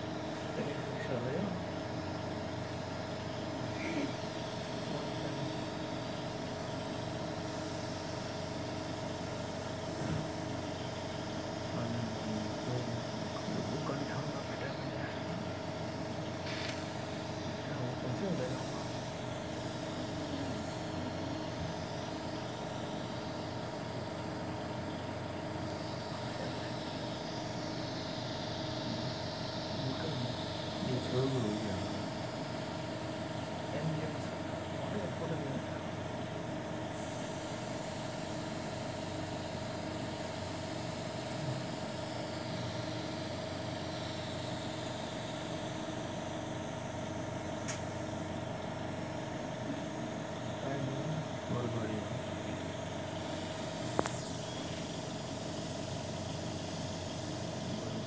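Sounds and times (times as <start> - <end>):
machine hum: 0.0 - 58.0.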